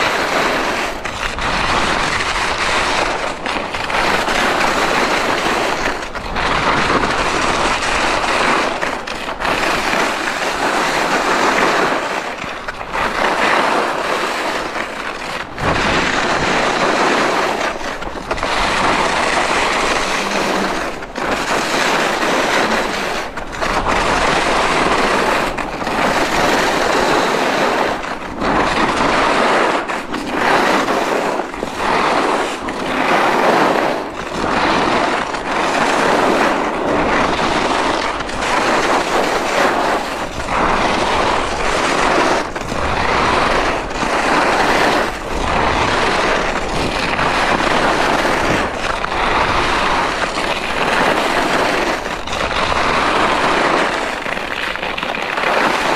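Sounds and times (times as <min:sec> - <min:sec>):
skis scraping on snow: 0:00.0 - 0:55.9.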